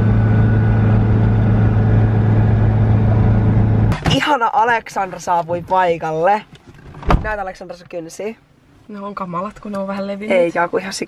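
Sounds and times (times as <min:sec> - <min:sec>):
car engine drone: 0:00.0 - 0:04.2
road noise: 0:00.0 - 0:11.0.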